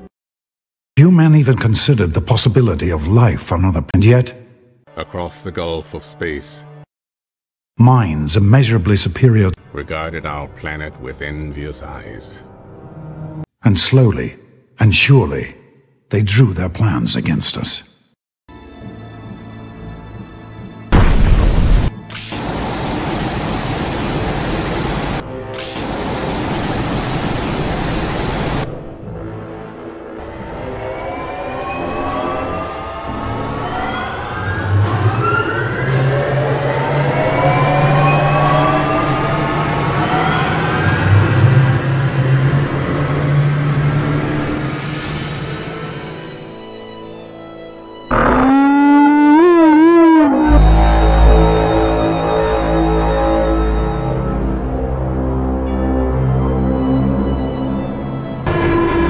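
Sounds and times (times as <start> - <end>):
quiet music: 4.9 - 6.8
loud boom: 20.9 - 21.9
loud blaring horn call: 48.1 - 54.1.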